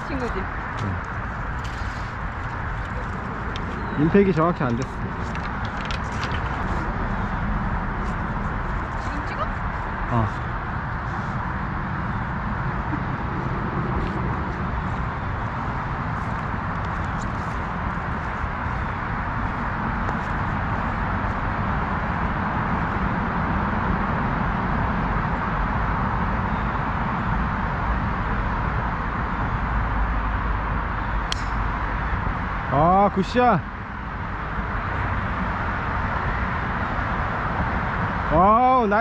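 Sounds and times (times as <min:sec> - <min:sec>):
steady rushing background noise: 0:00.0 - 0:39.0
golf club striking ball: 0:31.3 - 0:31.7.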